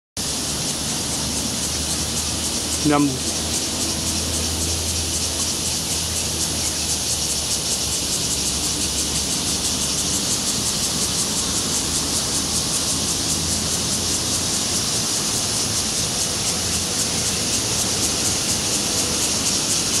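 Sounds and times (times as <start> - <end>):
high-pitched outdoor hiss: 0.2 - 20.0.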